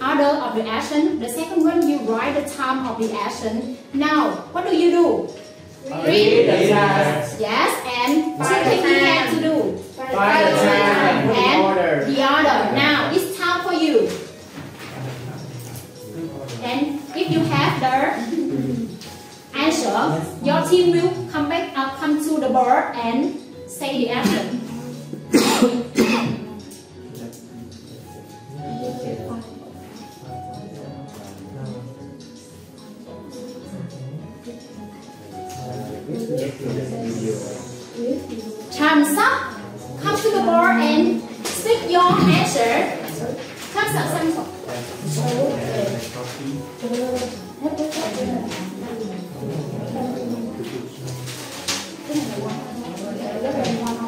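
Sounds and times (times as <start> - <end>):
people talking quietly: 24.2 - 54.0
person coughing: 25.3 - 26.5.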